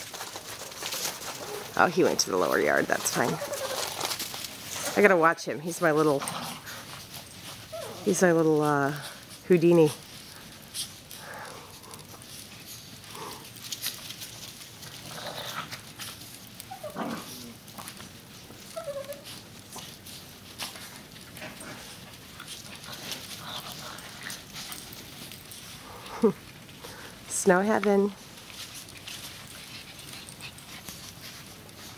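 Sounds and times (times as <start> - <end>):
small dogs whining and yipping: 3.2 - 4.0, 7.1 - 8.2, 16.6 - 17.5, 18.6 - 19.9.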